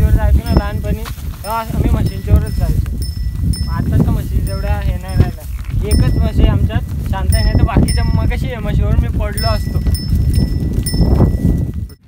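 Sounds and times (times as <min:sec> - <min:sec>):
person's voice: 0:00.0 - 0:02.9, 0:03.6 - 0:10.0
buffalo walking through dry grass: 0:00.0 - 0:12.0.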